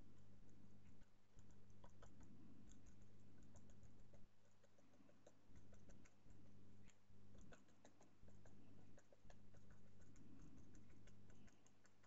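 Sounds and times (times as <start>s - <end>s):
brush dabbing paint on canvas: 0.0s - 12.0s
low electrical hum: 0.0s - 12.0s.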